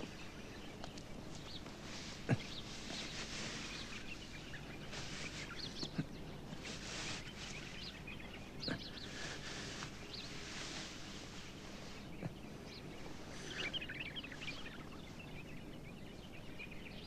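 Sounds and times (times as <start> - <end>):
small birds chirping: 0.0 - 17.0
steady background hiss: 0.0 - 17.0.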